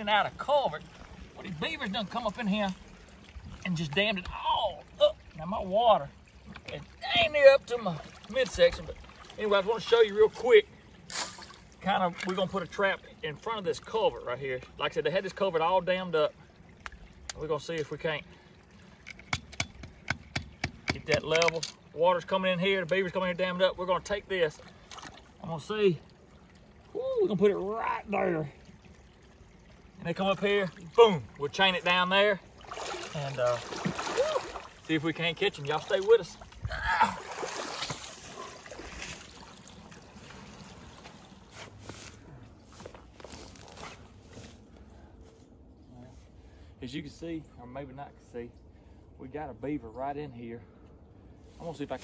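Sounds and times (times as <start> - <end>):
water splashing and sloshing: 0.0 - 46.8.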